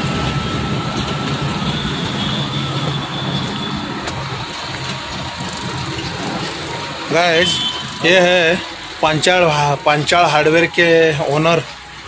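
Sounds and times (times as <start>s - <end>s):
vehicle engine running: 0.0s - 10.8s
street noise: 0.0s - 12.0s.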